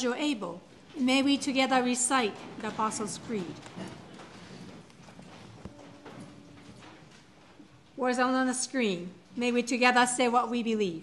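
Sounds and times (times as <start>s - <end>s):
congregation shuffling and rustling: 0.0s - 9.7s.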